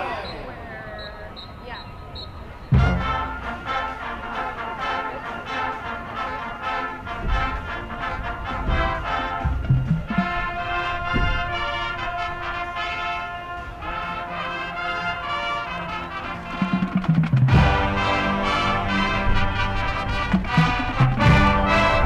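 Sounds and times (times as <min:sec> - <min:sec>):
marching band playing brass tune: 0:02.7 - 0:22.0
deep bass drum hits: 0:02.8 - 0:03.6, 0:08.6 - 0:11.9.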